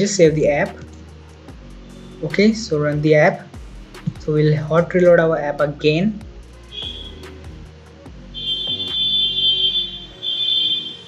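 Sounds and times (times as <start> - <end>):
high-pitched electronic tone: 6.7 - 7.2, 8.4 - 11.0.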